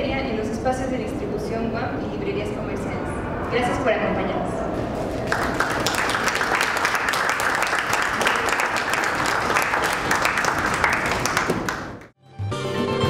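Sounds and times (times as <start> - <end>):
audience applauding: 5.2 - 12.1.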